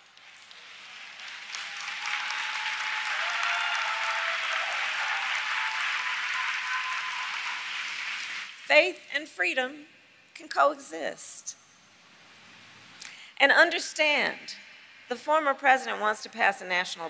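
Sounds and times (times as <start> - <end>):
large audience applauding: 0.0 - 8.7.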